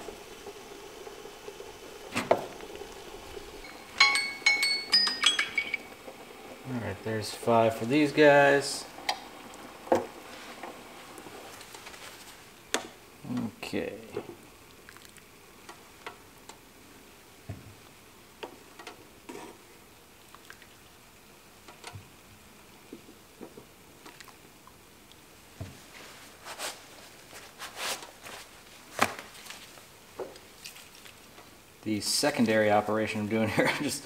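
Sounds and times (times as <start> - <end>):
water pouring into pot: 0.0 - 21.8.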